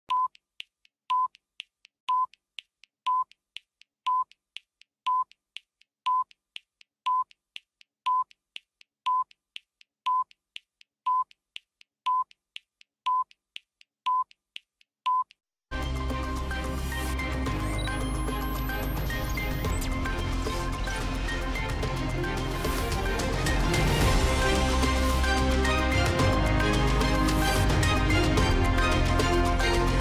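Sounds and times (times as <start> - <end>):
news theme music: 15.7 - 30.0.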